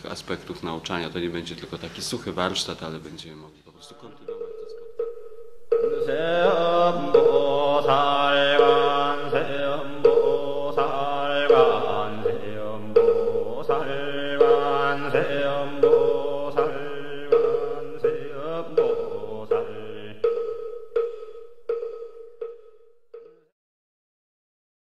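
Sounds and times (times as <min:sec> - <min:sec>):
struck percussion beat: 0:03.9 - 0:23.4
voices chanting: 0:05.7 - 0:21.2.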